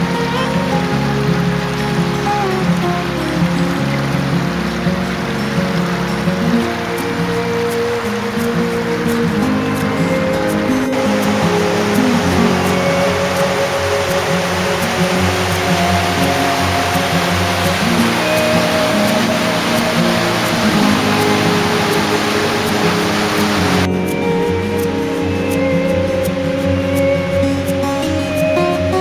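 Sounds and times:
water pouring over a weir: 0.0 - 23.9
background music: 0.0 - 29.0.

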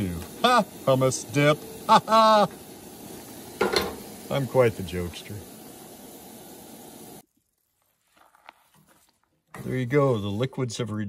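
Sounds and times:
vegetables sizzling in a skillet: 0.0 - 10.5.

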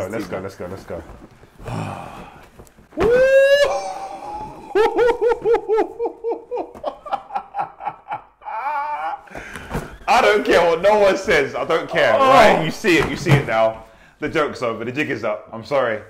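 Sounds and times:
loud rising whoop: 3.0 - 5.6
men laughing: 3.1 - 10.0.

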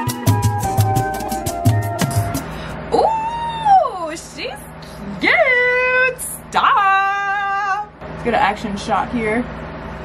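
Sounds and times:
woman speaking: 2.9 - 9.5.

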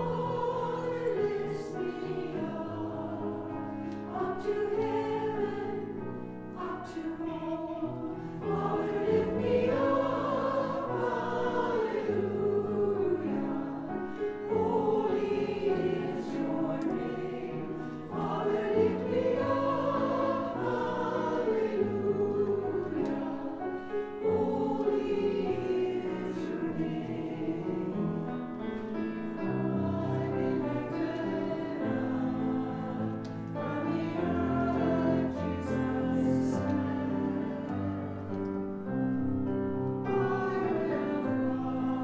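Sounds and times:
choir singing: 0.0 - 42.0
piano accompaniment: 0.0 - 42.0.

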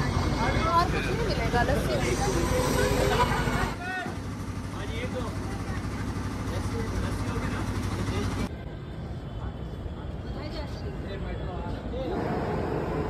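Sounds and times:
indistinct chatter: 0.0 - 13.0.

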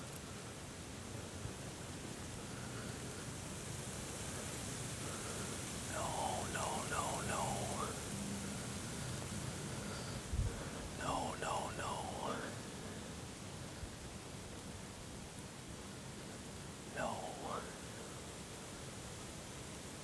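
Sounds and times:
soft whispering: 0.0 - 3.4, 4.1 - 14.6, 15.5 - 18.7
breeze: 4.3 - 14.7, 15.3 - 18.4.

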